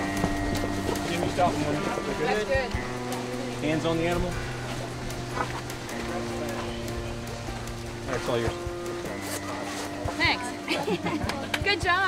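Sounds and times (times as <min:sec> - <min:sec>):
background music tones: 0:00.0 - 0:12.0.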